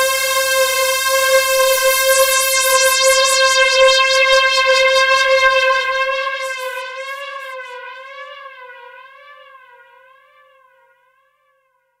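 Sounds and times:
rhythmic pulsing: 0.0s - 7.7s
synthesizer note with slow vibrato: 0.0s - 10.2s.

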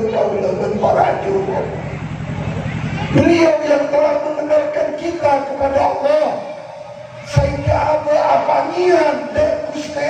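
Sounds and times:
man preaching through microphone: 0.0s - 1.8s, 3.1s - 10.0s.

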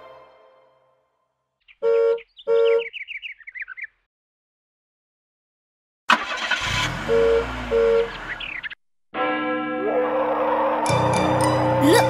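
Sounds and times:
song music: 0.0s - 1.1s, 9.2s - 12.0s.

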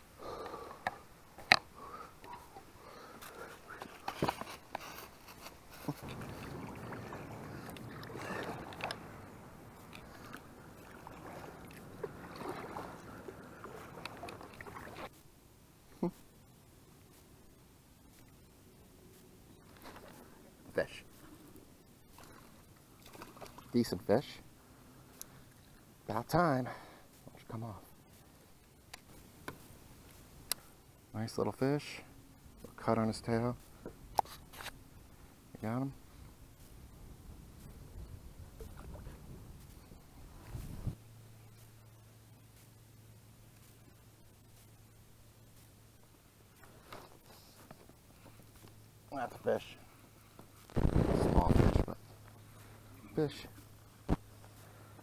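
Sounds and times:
water and wind noise: 0.0s - 15.2s, 18.9s - 28.1s, 32.5s - 41.8s
muffled rumble of kayak: 0.0s - 31.0s, 32.1s - 49.2s
muffled rustling of gear: 2.3s - 10.6s, 19.1s - 22.6s, 46.5s - 48.8s
faint short splashes: 5.8s - 15.1s.

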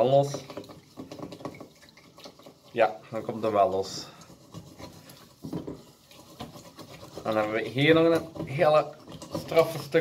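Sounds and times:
scrubbing a pan: 0.0s - 10.0s.

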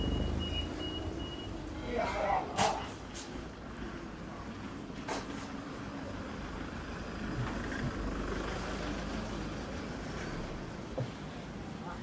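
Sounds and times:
vehicle engine rumbling: 0.0s - 11.8s
street noise: 0.0s - 12.0s.

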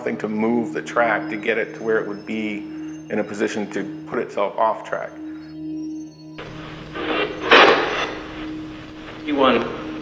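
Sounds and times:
faint steady hum: 5.0s - 10.0s
two-way radio static: 6.6s - 9.5s.

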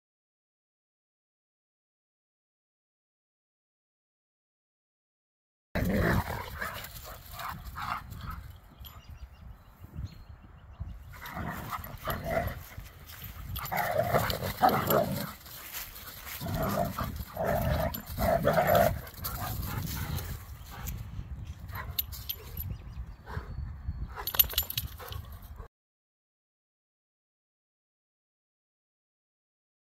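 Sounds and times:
dogs play-fighting: 5.8s - 9.0s, 11.1s - 21.0s, 24.1s - 25.6s.

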